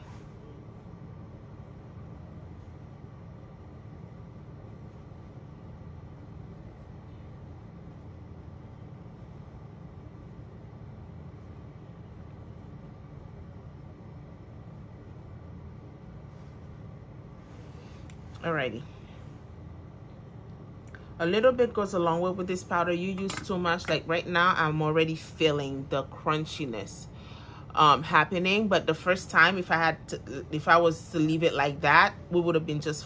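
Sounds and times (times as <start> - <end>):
low room hum: 0.0 - 33.0.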